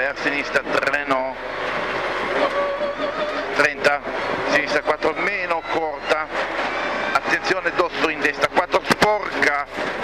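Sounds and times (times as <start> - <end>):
car engine running hard: 0.0 - 10.0
tyre and road noise: 0.0 - 10.0.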